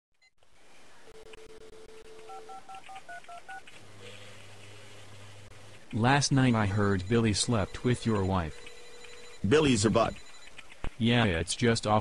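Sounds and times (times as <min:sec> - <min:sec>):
telephone dial tone: 0:01.2 - 0:03.6, 0:10.0 - 0:10.6.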